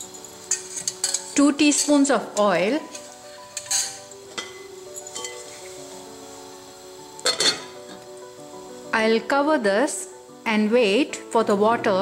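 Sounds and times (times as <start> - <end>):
soft background music: 0.0 - 12.0
glass lid clinking on steel pan: 3.6 - 5.5, 7.2 - 7.8.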